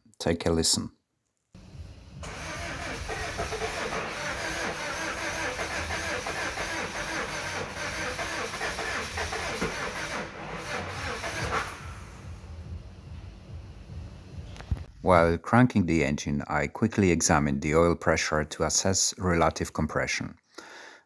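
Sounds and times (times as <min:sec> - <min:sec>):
diesel engine cranking on starter: 0:01.6 - 0:12.4.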